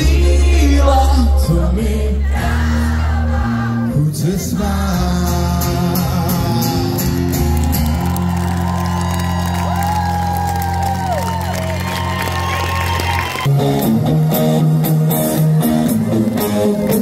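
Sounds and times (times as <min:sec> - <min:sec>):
rhythmic guitar strumming: 0:03.9 - 0:08.2, 0:13.5 - 0:17.0
live band music: 0:12.4 - 0:17.0.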